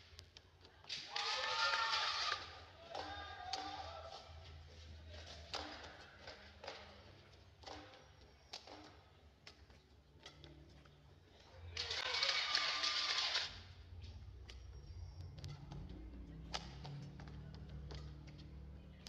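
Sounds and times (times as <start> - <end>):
racket striking shuttlecock: 0.9 - 10.9, 15.4 - 18.8
crowd cheering and shouting: 1.0 - 4.5.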